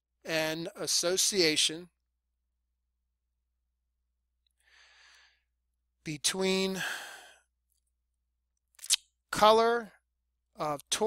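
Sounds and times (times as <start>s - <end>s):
faint breath in: 4.6s - 5.6s, 6.8s - 7.5s.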